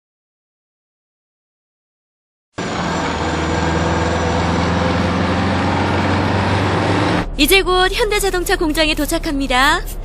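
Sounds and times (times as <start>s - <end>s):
bus engine running: 2.6s - 10.0s.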